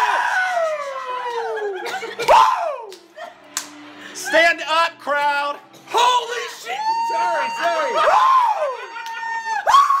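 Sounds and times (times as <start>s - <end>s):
people screaming and cheering: 0.0s - 10.0s.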